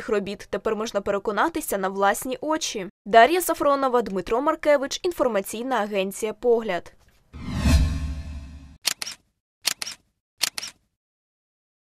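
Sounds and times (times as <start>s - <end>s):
camera shutter double clicks: 8.8s - 10.8s.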